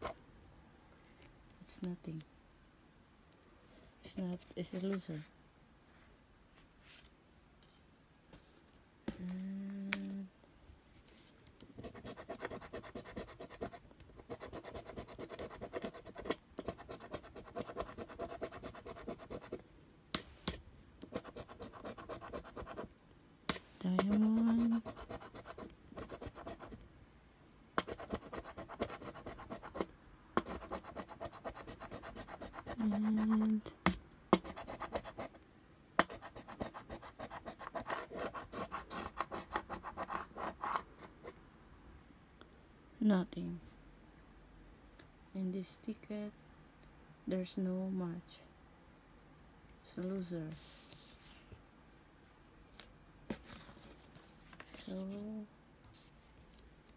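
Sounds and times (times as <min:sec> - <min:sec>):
person humming: 0:09.1 - 0:10.3.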